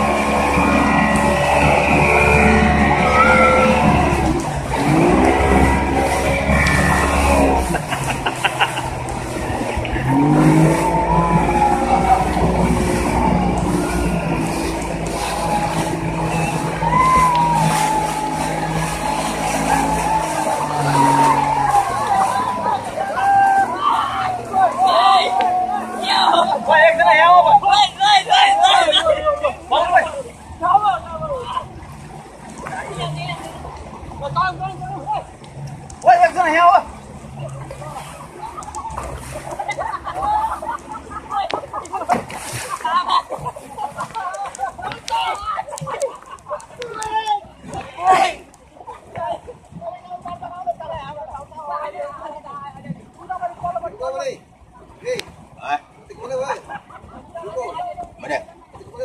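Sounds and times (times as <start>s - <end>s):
raised voices calling out: 0.0s - 8.2s, 8.9s - 31.8s
motorboat engine running: 0.0s - 59.0s
rushing wind and water: 0.0s - 59.0s.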